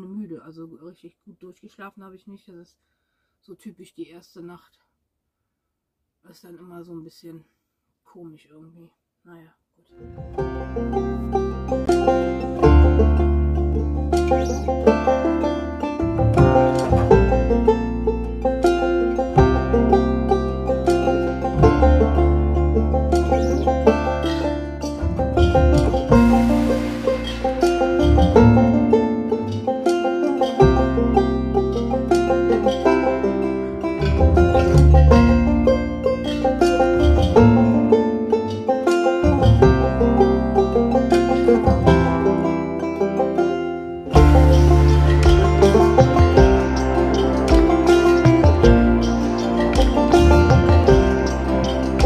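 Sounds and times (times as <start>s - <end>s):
bass line: 10.0s - 29.7s, 30.6s - 38.4s, 39.1s - 43.0s, 44.1s - 52.0s
plucked-string melody: 10.0s - 52.0s.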